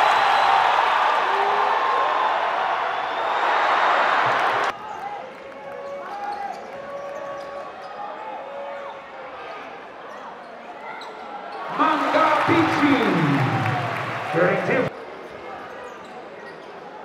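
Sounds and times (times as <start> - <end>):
sneakers squeaking: 5.8 - 8.2, 10.1 - 11.8, 15.0 - 16.9.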